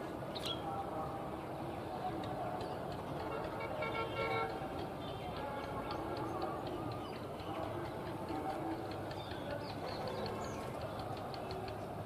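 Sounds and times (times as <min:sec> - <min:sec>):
fast light ticking: 0:02.2 - 0:12.0.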